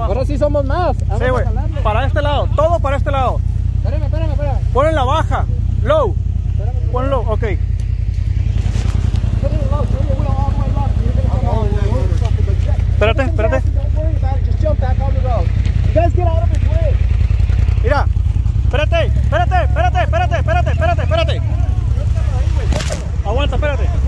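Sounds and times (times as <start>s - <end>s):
truck engine running low: 0.0s - 24.0s
people shouting: 18.8s - 24.0s.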